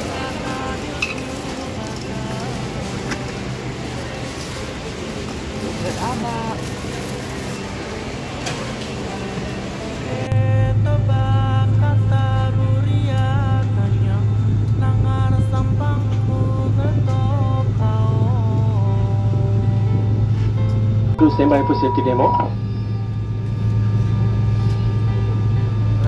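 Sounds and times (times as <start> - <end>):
voices: 0.0 - 14.0, 21.2 - 22.6
airliner cabin drone: 0.0 - 26.0
music: 0.0 - 26.0.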